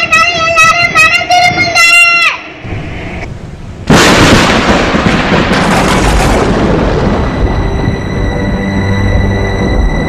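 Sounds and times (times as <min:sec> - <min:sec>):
child singing: 0:00.0 - 0:02.4
thunderclap and rumble: 0:03.8 - 0:10.0.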